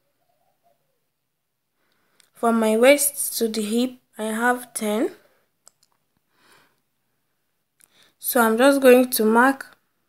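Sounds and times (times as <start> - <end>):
person speaking: 2.4 - 5.4
faint clicks: 5.6 - 6.8.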